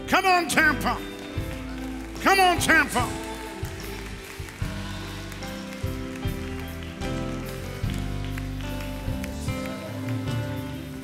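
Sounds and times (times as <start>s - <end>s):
band playing slow instrumental: 0.0s - 11.0s.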